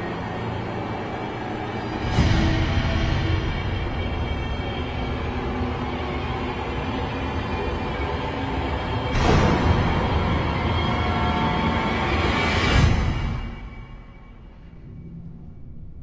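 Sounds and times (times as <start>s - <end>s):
orchestral drama score: 0.0s - 16.0s.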